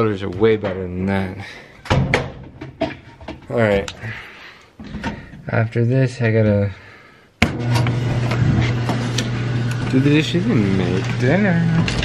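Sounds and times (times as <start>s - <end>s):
clothes dryer humming: 7.4s - 12.0s.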